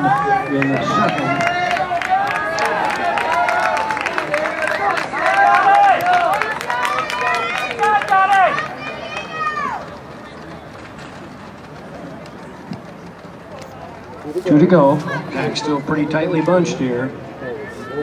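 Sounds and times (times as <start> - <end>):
spectators shouting encouragement: 0.0 - 10.8
background murmur: 0.0 - 18.0.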